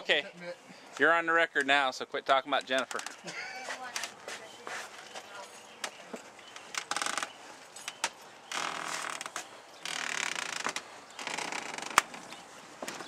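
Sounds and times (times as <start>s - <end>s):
camcorder rubbing on clothing: 3.0s - 5.3s.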